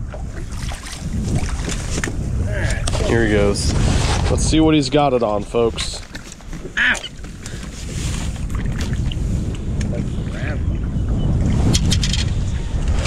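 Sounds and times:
wind rumbling on microphone: 0:00.0 - 0:13.0.

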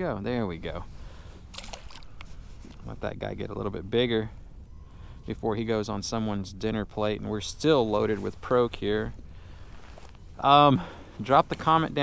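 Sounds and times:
fish splashing into water: 0:01.5 - 0:02.2.

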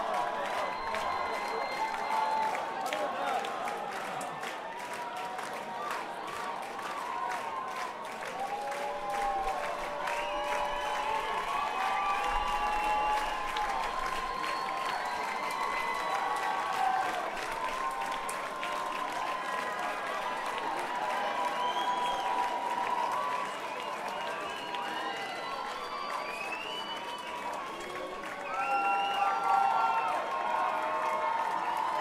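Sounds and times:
shouts and whoops: 0:00.0 - 0:04.3, 0:05.0 - 0:32.0
audience clapping and cheering: 0:00.0 - 0:32.0.

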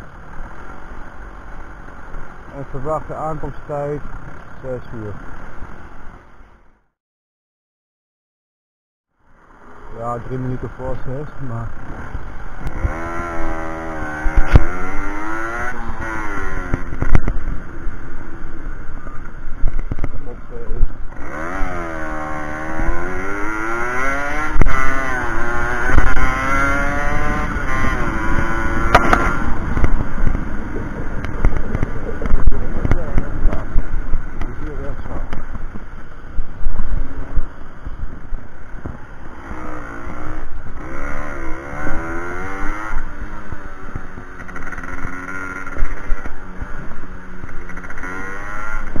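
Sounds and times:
moped engine revving: 0:11.1 - 0:18.1, 0:20.5 - 0:49.0.

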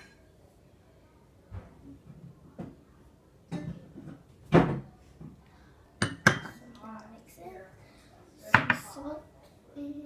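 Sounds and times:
glassware clinking: 0:00.0 - 0:00.2, 0:06.0 - 0:06.6.

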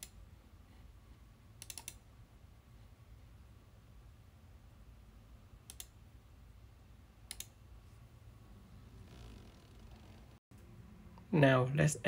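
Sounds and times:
faint low hum: 0:00.0 - 0:12.0
computer mouse clicks: 0:01.6 - 0:02.0, 0:05.7 - 0:06.0, 0:07.3 - 0:07.6.

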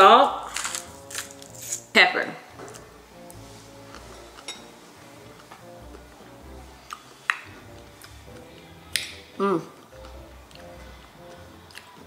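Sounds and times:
quiet background music: 0:00.0 - 0:12.0
spoon clinking glass bowl: 0:04.4 - 0:04.8.

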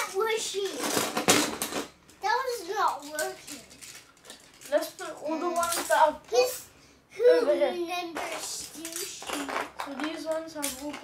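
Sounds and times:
children talking and exclaiming: 0:00.0 - 0:01.0, 0:02.2 - 0:03.9, 0:04.7 - 0:11.0.

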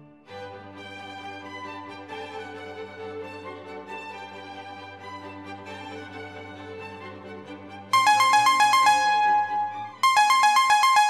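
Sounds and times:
background music: 0:00.0 - 0:11.0
electronic chime melody: 0:08.0 - 0:11.0.

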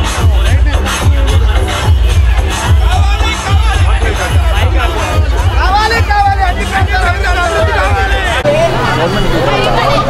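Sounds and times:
loud music with heavy beat: 0:00.0 - 0:08.5
crowd voices: 0:00.0 - 0:10.0
street babble: 0:00.0 - 0:10.0.

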